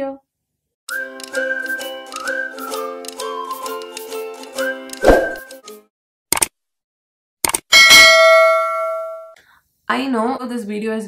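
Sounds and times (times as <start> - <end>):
bright bell ding: 7.8 - 9.4.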